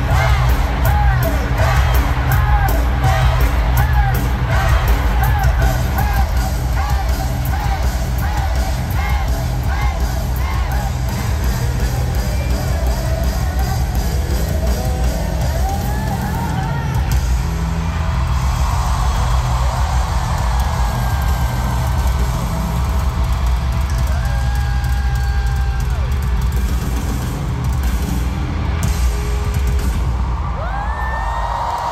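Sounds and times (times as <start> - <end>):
live band music in arena: 0.0 - 31.9.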